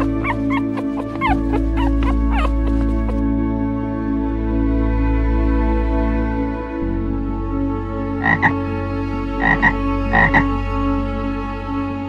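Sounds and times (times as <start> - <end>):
puppy whimpering: 0.0 - 3.2
background music with held tones: 0.0 - 12.0.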